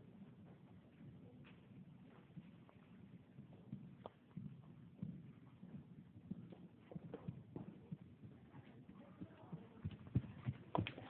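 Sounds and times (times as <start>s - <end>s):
horse hooves thudding: 0.0s - 11.0s.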